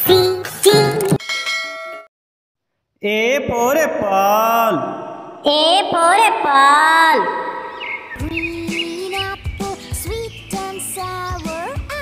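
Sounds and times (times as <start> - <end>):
bell chime: 1.2 - 2.1.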